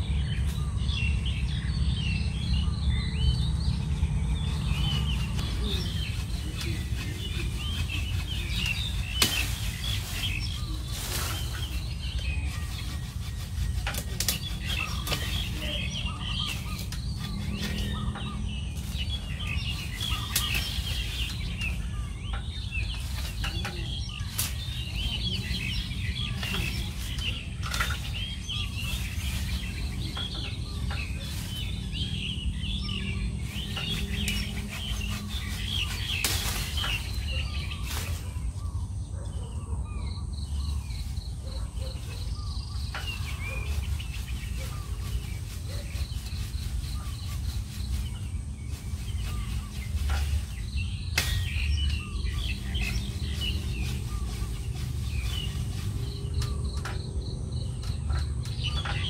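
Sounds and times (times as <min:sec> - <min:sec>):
small birds chirping: 0:00.0 - 0:59.0
steady low rumble: 0:00.0 - 0:59.0
pruning shears snipping twigs: 0:04.8 - 0:12.2, 0:13.6 - 0:15.8, 0:16.4 - 0:31.7, 0:33.6 - 0:38.5, 0:49.5 - 0:57.1.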